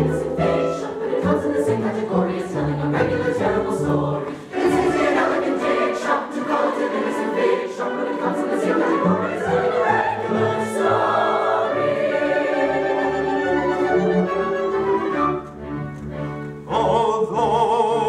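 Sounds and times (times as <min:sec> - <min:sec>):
mixed chorus singing: 0:00.0 - 0:13.6.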